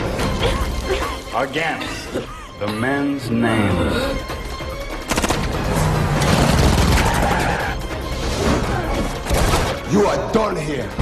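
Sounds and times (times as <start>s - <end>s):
film score music: 0.0s - 11.0s
rapid gunfire: 5.0s - 5.6s, 6.3s - 7.3s.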